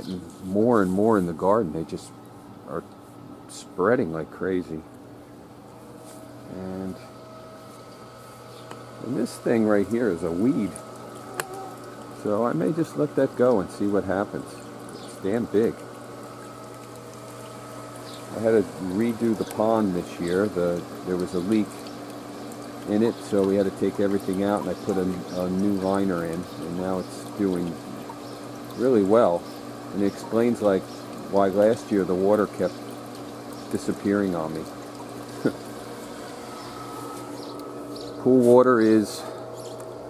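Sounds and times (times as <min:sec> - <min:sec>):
water pump humming: 0:00.0 - 0:40.0
water trickling: 0:04.7 - 0:40.0.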